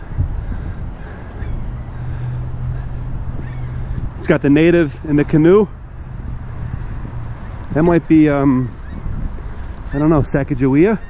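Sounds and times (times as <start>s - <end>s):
faint bird calls: 0.0s - 4.1s, 6.8s - 11.0s
low outdoor rumble: 0.0s - 11.0s.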